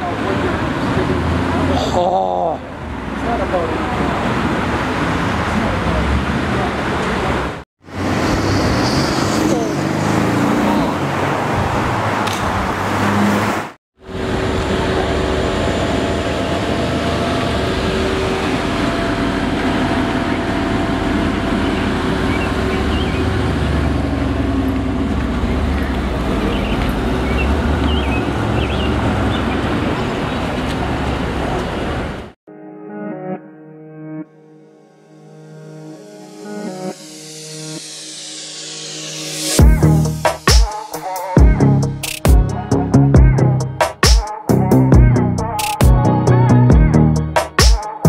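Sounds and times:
city street traffic: 0:00.0 - 0:32.4, 0:38.9 - 0:48.0
car engine at low speed: 0:14.0 - 0:32.2.

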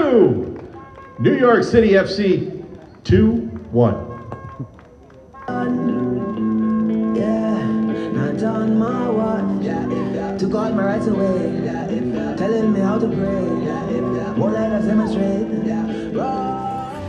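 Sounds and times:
song over public-address speakers: 0:00.0 - 0:17.0.

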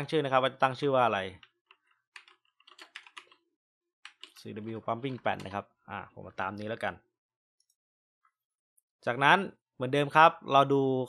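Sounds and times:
computer keyboard typing: 0:01.4 - 0:03.4, 0:04.0 - 0:04.4.

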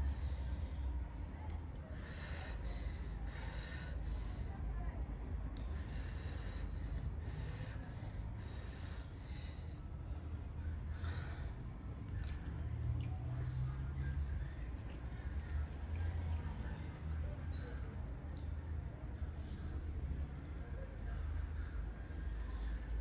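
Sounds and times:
noisy breathing: 0:00.0 - 0:12.4, 0:17.0 - 0:23.0.

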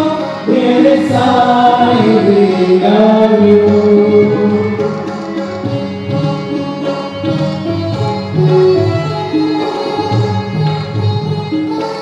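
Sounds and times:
group singing devotional song: 0:00.0 - 0:04.6
harmonium: 0:00.0 - 0:12.0
violin: 0:00.0 - 0:12.0.

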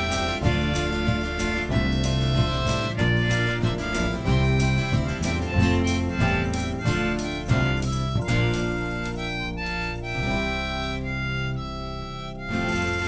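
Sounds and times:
drums: 0:00.0 - 0:10.9
acoustic guitar: 0:00.0 - 0:13.0
bass guitar: 0:00.0 - 0:13.0
harmonica: 0:00.0 - 0:13.0.

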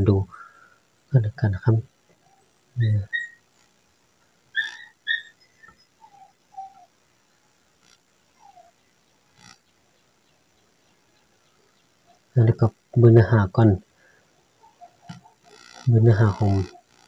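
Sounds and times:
high-pitched whistled chirps: 0:02.9 - 0:03.4, 0:04.6 - 0:06.9.

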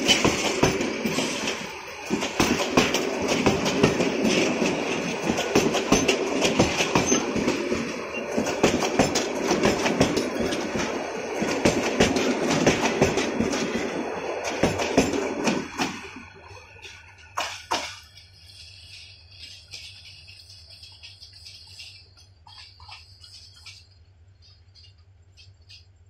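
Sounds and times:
train wheels rumbling and clacking: 0:00.0 - 0:26.0.

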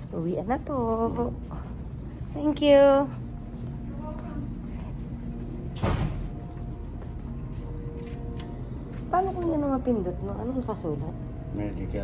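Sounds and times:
steady low hum: 0:00.0 - 0:12.0
door shutting with thump: 0:05.8 - 0:06.3.

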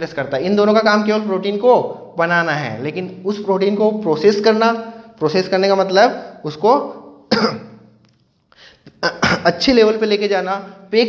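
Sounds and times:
man coughing: 0:07.3 - 0:07.9, 0:08.9 - 0:09.7.

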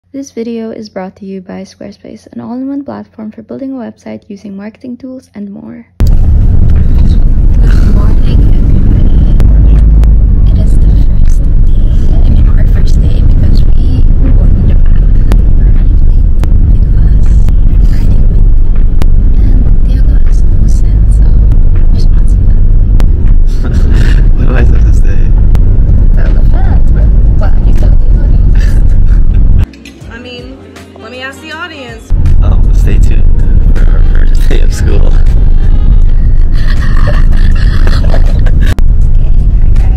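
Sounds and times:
van engine and road rumble: 0:06.0 - 0:29.7, 0:32.1 - 0:39.9
voices talking: 0:06.7 - 0:39.9.

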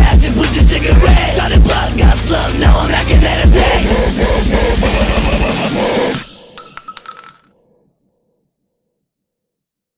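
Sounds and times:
short metallic clinks: 0:06.6 - 0:07.5.

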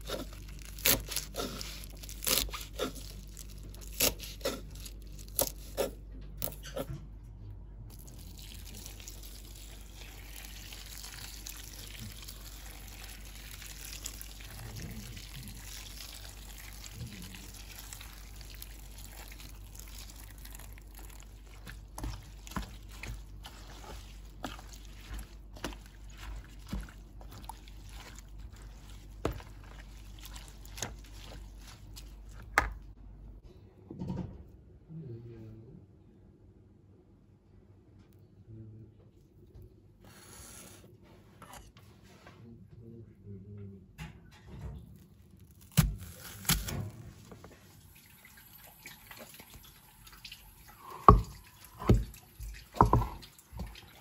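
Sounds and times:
water pouring into bowl: 0:07.9 - 0:32.4, 0:47.6 - 0:54.0
knife chopping on wooden board: 0:51.0 - 0:52.1, 0:52.8 - 0:53.7.

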